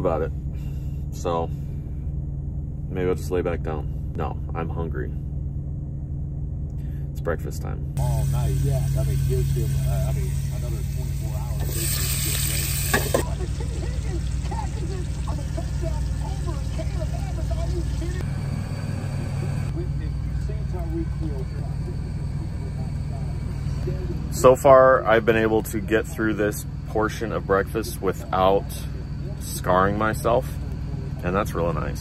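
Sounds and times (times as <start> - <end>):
steady low hum: 0.0 - 32.0
sports news talk: 7.2 - 18.2
burst of hiss: 11.6 - 13.2.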